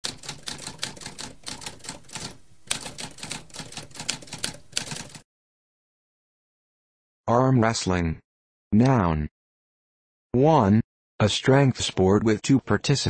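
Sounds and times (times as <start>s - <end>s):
typewriter keys clicking: 0.0s - 5.2s.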